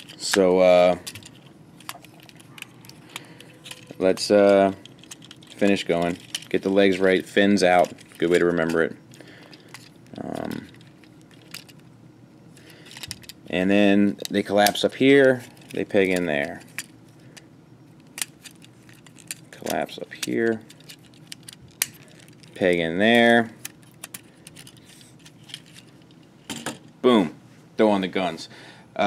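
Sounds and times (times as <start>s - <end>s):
plastic toy parts clicking: 1.0s - 6.6s, 23.6s - 25.9s.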